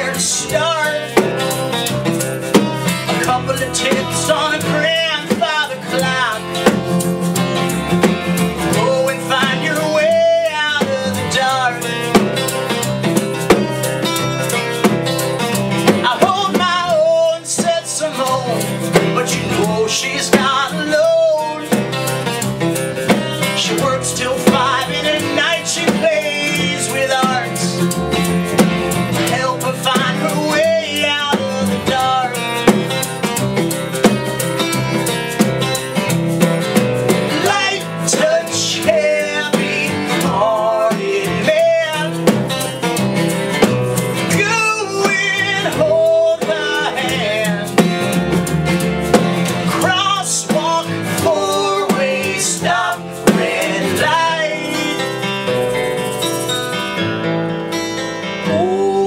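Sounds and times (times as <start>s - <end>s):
man singing: 0.0s - 7.0s, 8.5s - 12.2s, 16.0s - 22.4s, 23.4s - 28.1s, 29.1s - 33.1s, 37.3s - 43.0s, 44.2s - 48.2s, 49.6s - 55.6s, 58.4s - 59.0s
acoustic guitars strumming: 0.0s - 59.0s
upright bass: 0.0s - 59.0s
snare drum: 46.8s - 51.1s, 51.8s - 54.3s.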